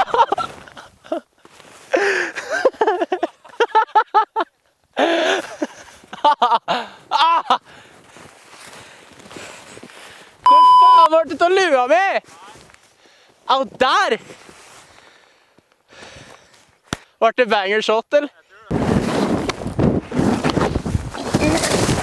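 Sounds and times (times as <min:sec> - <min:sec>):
person laughing: 0:00.0 - 0:01.2, 0:01.9 - 0:07.6.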